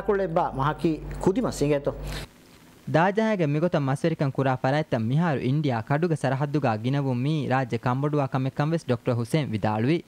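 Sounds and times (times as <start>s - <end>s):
man speaking: 0.0s - 2.3s, 2.9s - 10.0s.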